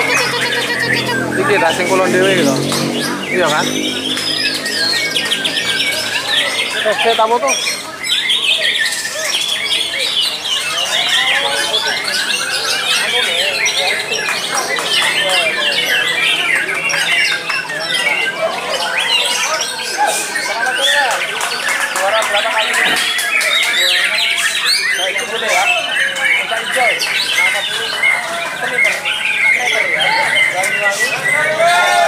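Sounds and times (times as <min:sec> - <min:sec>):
many songbirds singing: 0:00.0 - 0:32.0.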